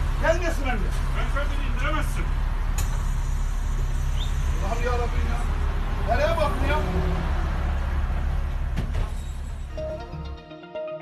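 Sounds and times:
bus engine rumbling: 0:00.0 - 0:10.4.

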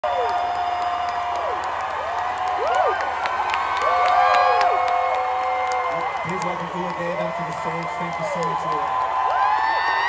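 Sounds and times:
crowd cheering and whooping: 0:00.0 - 0:10.0
scattered clapping: 0:00.2 - 0:10.0.

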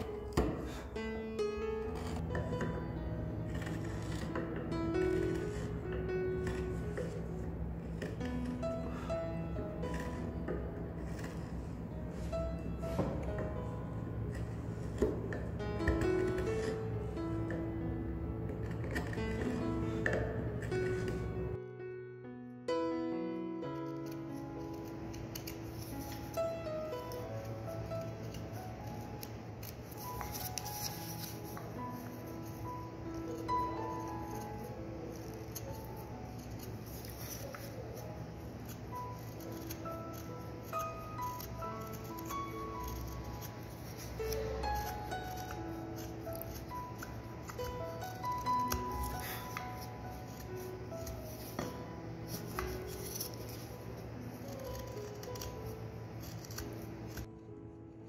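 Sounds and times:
knife carving wood: 0:00.0 - 0:21.5, 0:23.8 - 0:57.3
soft background music: 0:00.0 - 0:58.0.

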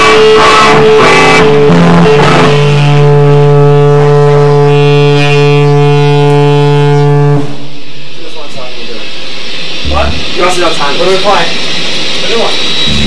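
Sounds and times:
sustained electric guitar note: 0:00.0 - 0:07.9, 0:09.8 - 0:10.5.

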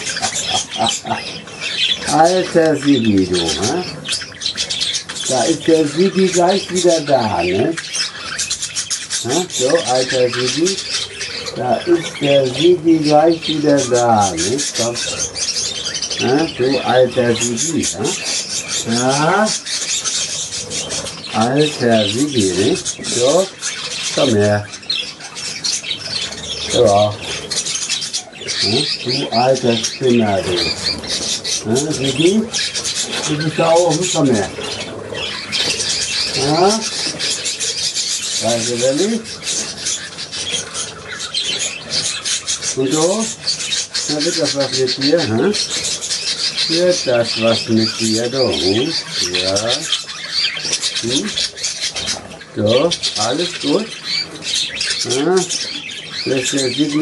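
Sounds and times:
budgerigars chattering and chirping: 0:00.0 - 0:57.0.

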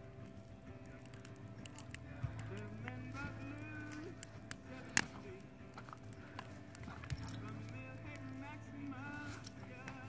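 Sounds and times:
paws and feet on grass: 0:01.7 - 0:10.0.

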